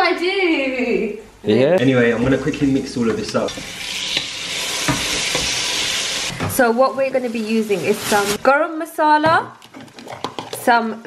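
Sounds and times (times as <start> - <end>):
food sizzling in hot oil: 2.8 - 8.5
wooden spoon scraping pot: 9.6 - 10.8.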